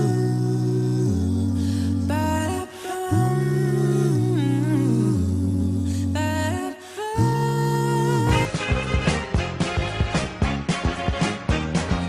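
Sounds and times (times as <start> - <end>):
a cappella voices singing chords: 0.0 - 9.0
deep sung bass line: 0.0 - 10.7.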